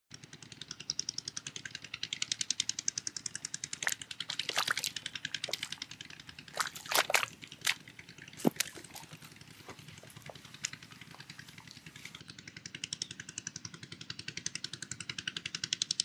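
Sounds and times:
fish flapping on wet mud: 3.2s - 12.2s.

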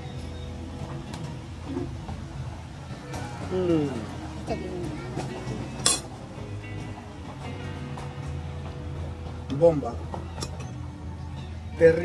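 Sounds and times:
background music: 0.0s - 12.0s
tableware clinking: 5.8s - 6.1s, 10.2s - 10.8s.

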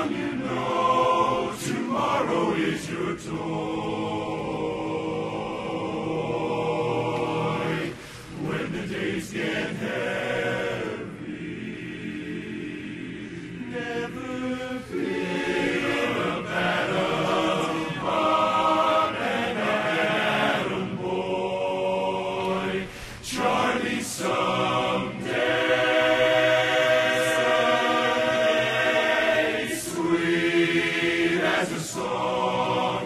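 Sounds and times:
men's chorus singing a cappella: 0.0s - 33.0s.

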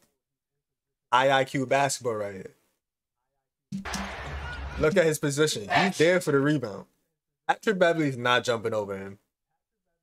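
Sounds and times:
arena crowd noise: 3.8s - 5.0s.

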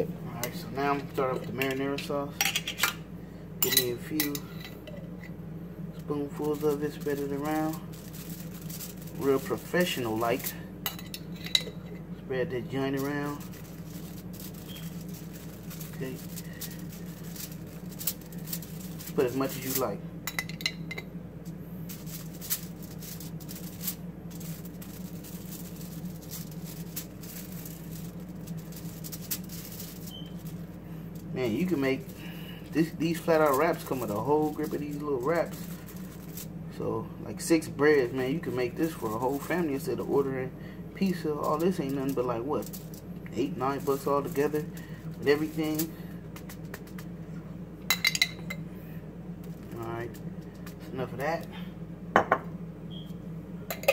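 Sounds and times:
steady low hum: 0.0s - 53.9s
metal spoon scraping foil tray: 6.2s - 10.6s, 12.8s - 20.0s, 21.8s - 36.5s, 41.1s - 47.0s.

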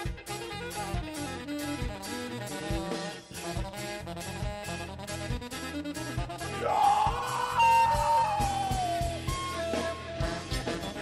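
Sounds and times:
bass: 0.0s - 11.0s
drums: 0.0s - 11.0s.

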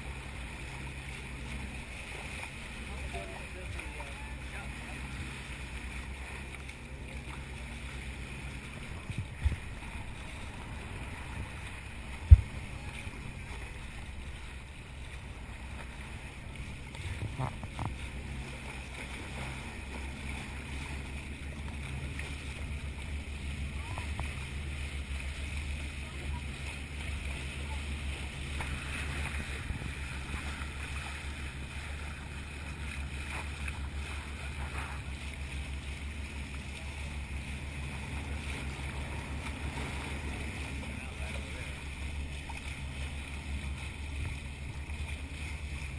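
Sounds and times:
water rushing: 0.0s - 45.9s
wind on camera: 8.8s - 14.7s, 15.6s - 18.2s
sharp thump: 12.2s - 12.7s.

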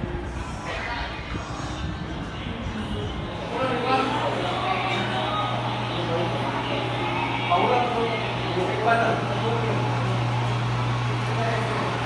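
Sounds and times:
indistinct chatter: 0.0s - 12.0s
low mechanical hum: 0.0s - 12.0s.

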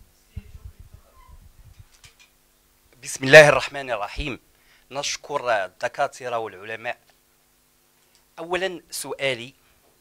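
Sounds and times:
microphone handling thumps: 0.3s - 2.1s.

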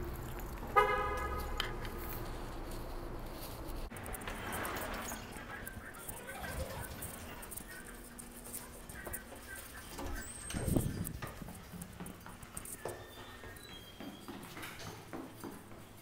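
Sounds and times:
footsteps on hard floor: 1.1s - 16.0s.

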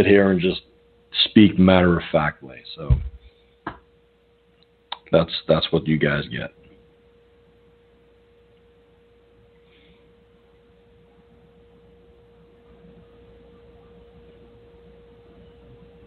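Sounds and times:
low hiss: 0.0s - 16.0s.

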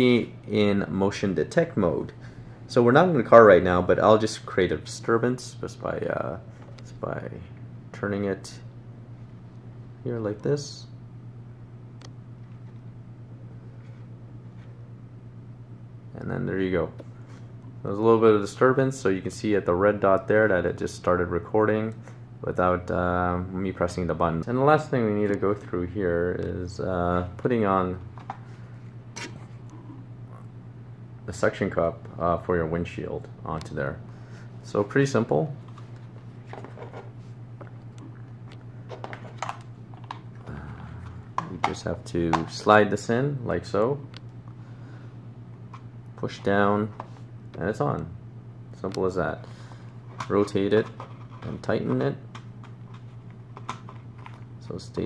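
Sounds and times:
low steady hum: 0.0s - 55.0s.

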